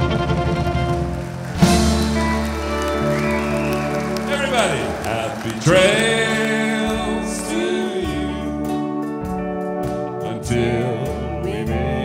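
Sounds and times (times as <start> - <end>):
western swing band playing: 0.0 - 12.0.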